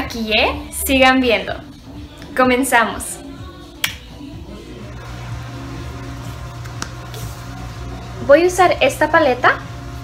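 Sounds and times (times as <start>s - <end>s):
quiet background music: 0.0s - 10.0s
finger snap: 3.7s - 4.2s, 6.6s - 7.2s.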